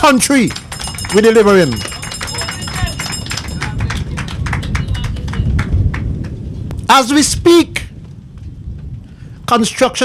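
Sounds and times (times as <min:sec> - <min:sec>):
audience clapping: 0:00.0 - 0:06.4
low rumble: 0:02.6 - 0:09.5.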